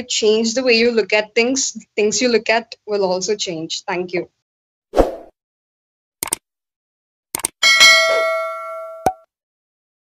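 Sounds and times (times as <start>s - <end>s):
quick clicks: 6.2s - 6.4s, 7.4s - 7.6s
bright bell ding: 7.6s - 9.2s.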